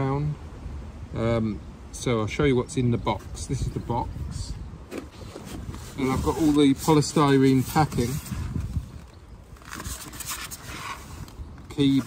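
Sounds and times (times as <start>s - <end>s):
polystyrene packing scraping: 4.9s - 12.0s.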